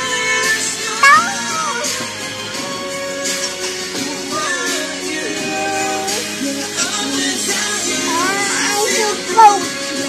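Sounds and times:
child singing high note: 8.1 - 9.7.

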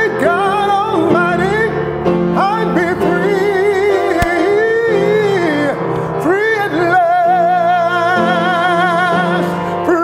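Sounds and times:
man singing with vibrato: 0.0 - 10.0
sustained piano chords: 0.0 - 10.0.

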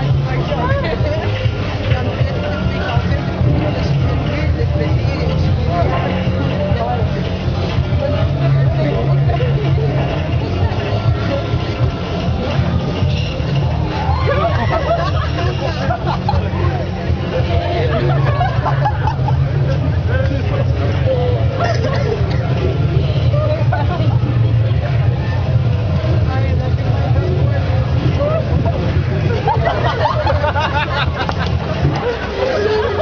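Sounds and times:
people talking over one another: 0.0 - 33.0.

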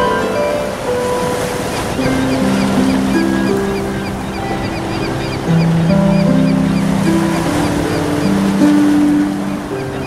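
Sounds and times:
harp playing slow melody: 0.0 - 10.0
ocean surf: 0.0 - 10.0.

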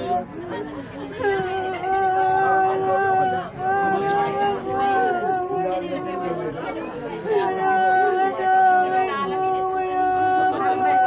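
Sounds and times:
people talking and sobbing: 0.0 - 11.0.

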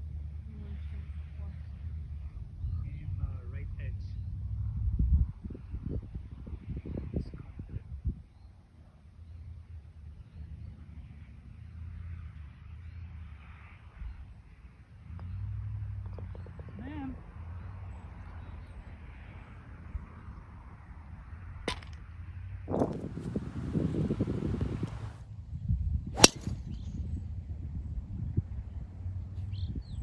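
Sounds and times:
wind rumbling on microphone: 1.4 - 8.5, 19.7 - 30.0
golf club striking ball: 26.2 - 26.6.

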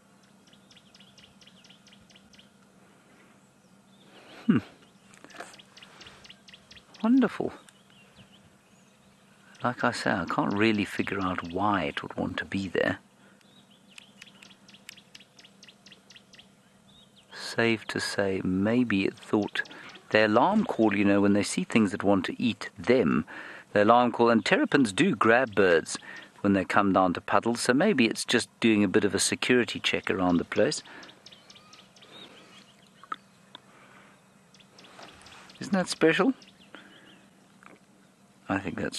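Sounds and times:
faint bird chirping: 0.0 - 38.9.

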